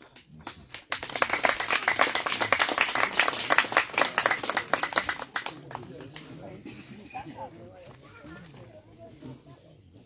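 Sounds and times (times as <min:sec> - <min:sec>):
people clapping: 0:00.0 - 0:06.5.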